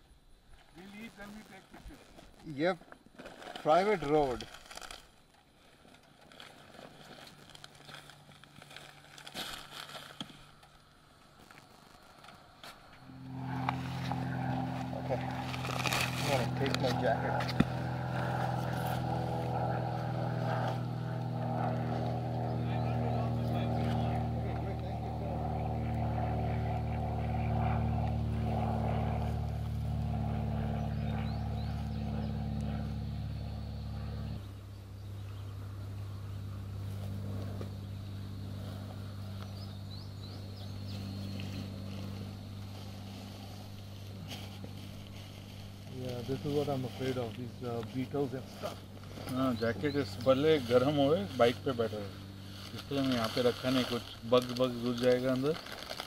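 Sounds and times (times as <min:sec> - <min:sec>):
vehicle engine idling: 0:13.0 - 0:25.9, 0:28.0 - 0:54.2.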